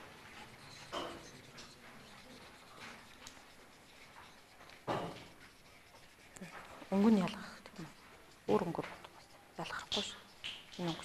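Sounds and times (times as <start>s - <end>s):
classroom room noise: 0.0s - 11.0s
people talking: 6.9s - 7.9s, 8.5s - 9.0s, 9.6s - 10.2s, 10.8s - 11.0s.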